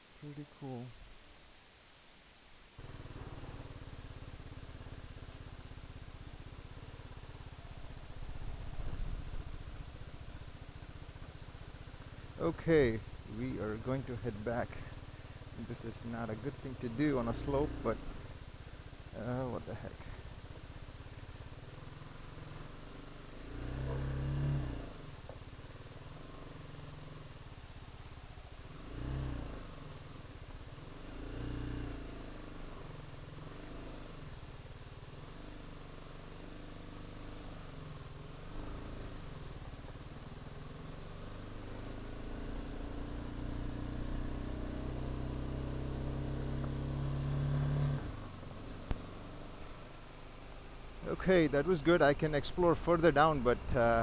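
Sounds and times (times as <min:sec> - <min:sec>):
motorcycle engine running: 0:02.8 - 0:54.0.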